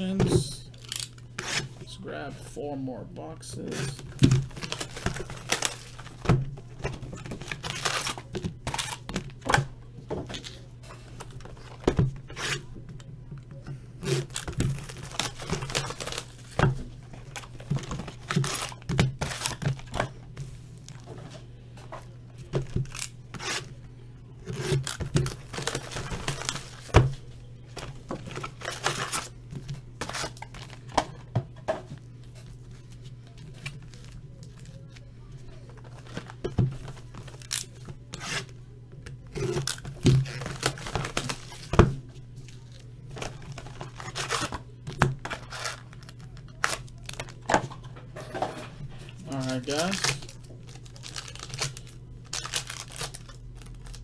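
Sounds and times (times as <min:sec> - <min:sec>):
steady low hum: 0:00.0 - 0:54.0
foil packs crinkling: 0:03.6 - 0:09.6, 0:14.0 - 0:20.1, 0:24.4 - 0:31.0, 0:32.2 - 0:38.5, 0:39.2 - 0:41.8, 0:42.4 - 0:47.5, 0:49.2 - 0:54.0
cardboard tearing: 0:03.9 - 0:06.2, 0:07.0 - 0:09.5, 0:14.0 - 0:16.6, 0:17.3 - 0:20.0, 0:24.4 - 0:26.9, 0:39.3 - 0:41.7, 0:43.2 - 0:44.6, 0:45.2 - 0:47.3, 0:49.4 - 0:54.0.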